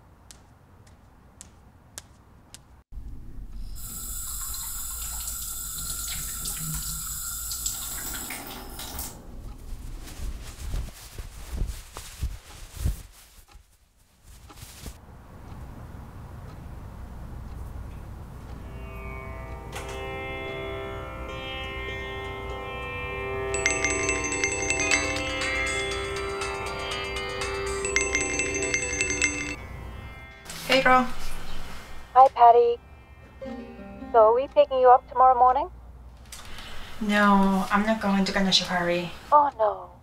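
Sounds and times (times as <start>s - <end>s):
water running into steel sink: 3.8s - 9.2s
instrumental music with drone: 18.5s - 30.5s
phone ringtone trill: 23.5s - 29.6s.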